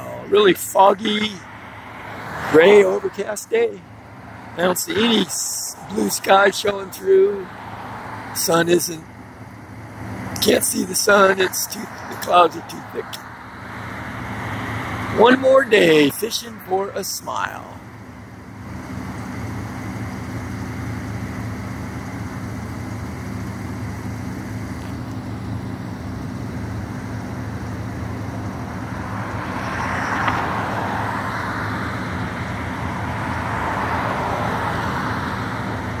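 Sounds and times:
vehicle passing: 0.0s - 8.9s, 9.9s - 17.8s, 27.4s - 36.0s
road traffic hum: 0.0s - 36.0s.

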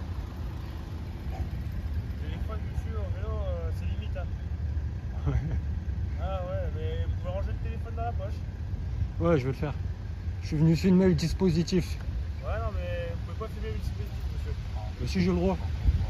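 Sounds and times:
wind noise on microphone: 15.6s - 16.0s.

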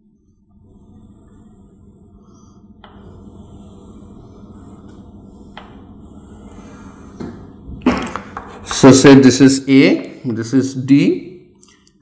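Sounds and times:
low steady hum: 0.0s - 12.0s
chalk scratching on blackboard: 0.7s - 7.2s.

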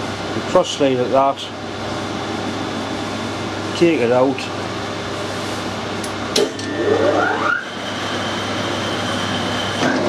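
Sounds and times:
lathe motor whining: 6.4s - 10.0s.

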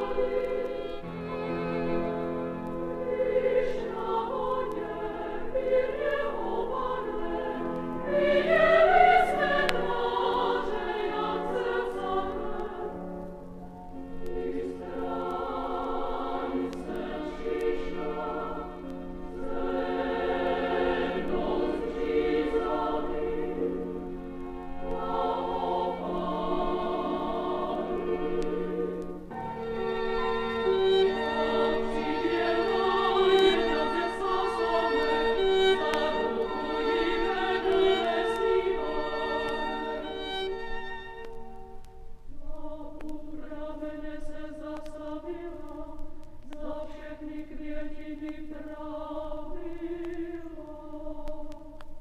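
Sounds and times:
children's choir singing: 0.0s - 2.1s, 2.9s - 13.2s, 14.1s - 41.4s, 42.4s - 52.0s
strings and piano accompaniment: 0.0s - 42.4s.

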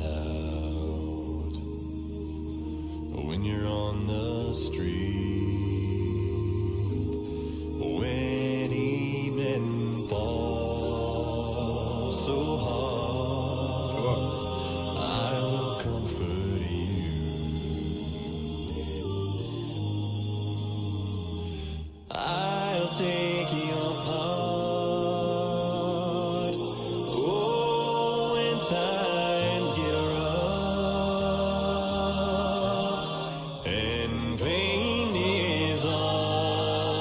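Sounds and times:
voices singing in close harmony: 0.0s - 37.0s
deep bass voice singing: 3.1s - 7.2s, 7.8s - 37.0s.

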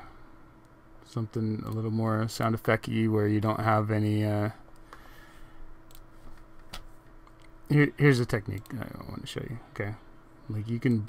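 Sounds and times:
faint steady hum: 0.0s - 11.0s
computer mouse clicks: 5.9s - 7.6s, 8.5s - 8.8s.

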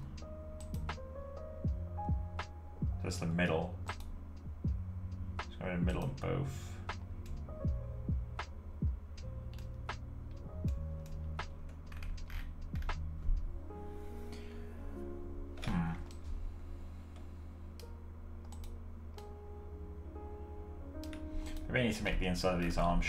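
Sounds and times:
soft background music: 0.0s - 23.0s
keyboard and mouse clicks: 0.6s - 1.0s, 10.3s - 13.1s, 17.8s - 19.3s, 21.0s - 21.7s.

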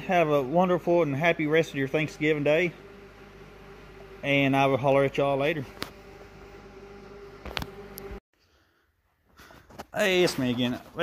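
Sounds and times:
low hum: 0.0s - 8.2s.

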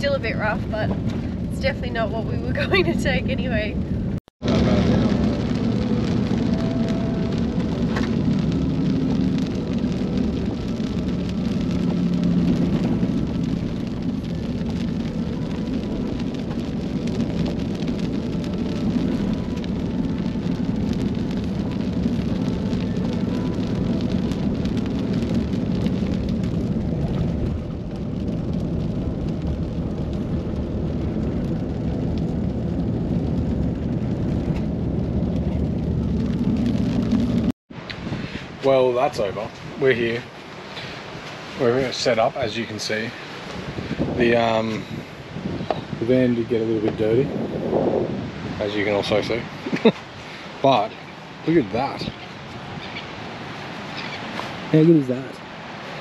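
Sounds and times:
engine drone: 0.0s - 56.0s
tyre and road noise: 0.0s - 56.0s.

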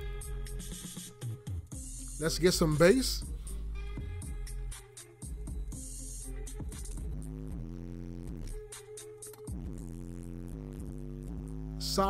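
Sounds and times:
bass-heavy electronic music: 0.0s - 1.0s, 1.7s - 8.9s, 9.5s - 12.0s.

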